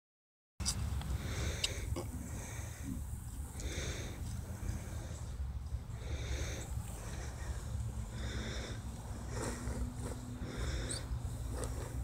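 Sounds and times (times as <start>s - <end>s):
hissing puffs: 1.1s - 12.0s.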